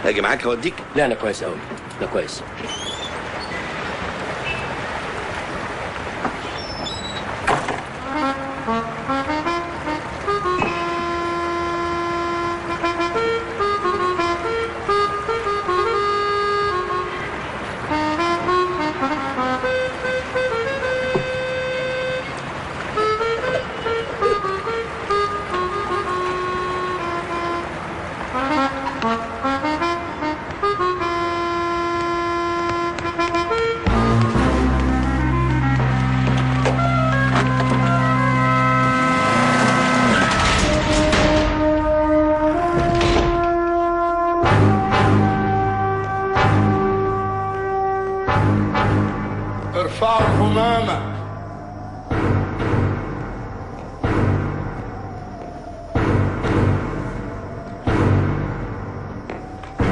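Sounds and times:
slow film music melody: 7.8s - 59.9s.

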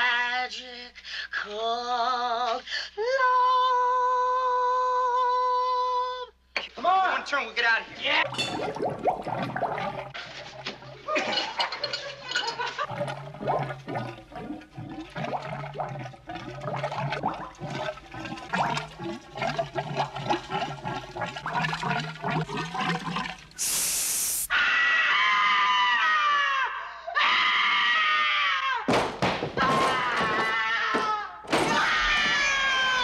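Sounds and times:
woman screaming: 29.6s - 33.0s.

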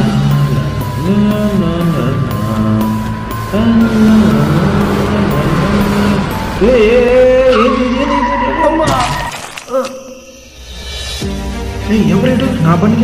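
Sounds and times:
low engine rumble: 0.0s - 8.8s
dramatic music: 0.0s - 13.0s
tyres screeching: 2.8s - 10.6s
car crash: 3.5s - 10.3s.

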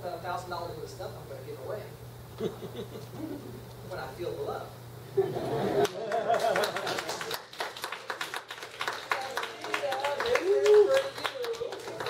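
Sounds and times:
audience clapping: 5.8s - 12.0s.

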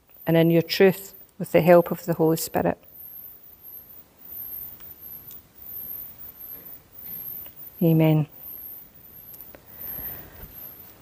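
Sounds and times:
faint ticks: 4.3s - 7.8s, 9.2s - 10.9s.

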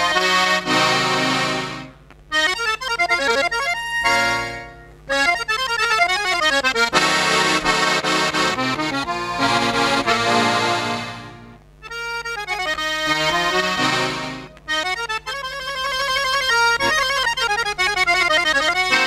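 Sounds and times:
button accordion playing: 0.0s - 19.0s.

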